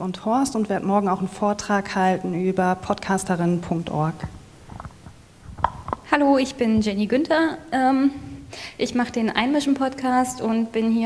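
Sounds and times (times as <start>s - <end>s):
person speaking: 0.0s - 9.8s
microphone handling rubbing: 3.6s - 7.2s
microphone knocks: 4.2s - 7.0s.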